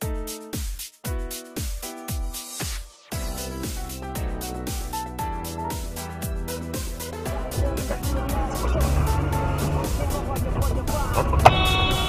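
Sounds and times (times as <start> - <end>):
music with steady beat: 0.0 - 12.0
car engine and road noise: 7.1 - 12.0
loud steady high tone: 11.4 - 12.0.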